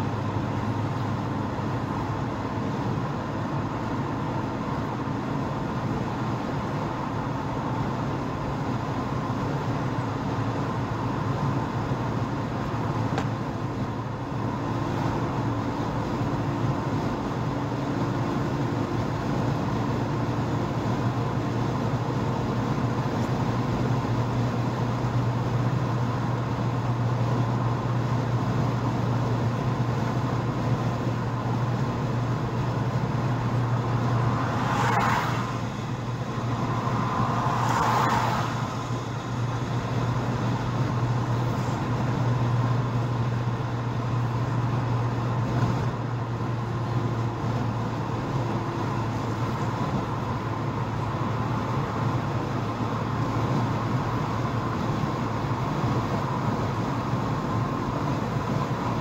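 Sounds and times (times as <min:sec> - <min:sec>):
car engine hum: 0:00.0 - 0:59.0
tyre and road rush: 0:00.0 - 0:59.0
brief whooshes: 0:34.3 - 0:39.0.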